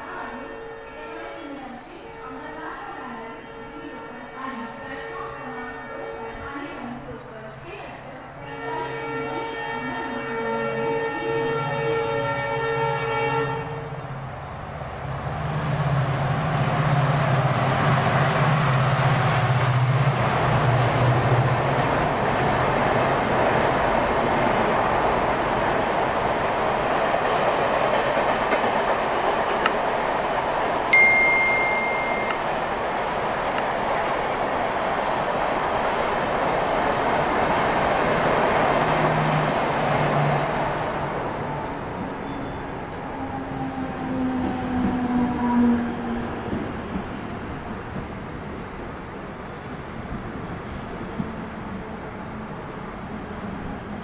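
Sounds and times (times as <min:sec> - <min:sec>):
train horn: 0:00.0 - 0:01.5, 0:03.0 - 0:07.1, 0:08.4 - 0:14.0
train wheels rumbling on rails: 0:14.3 - 0:54.0.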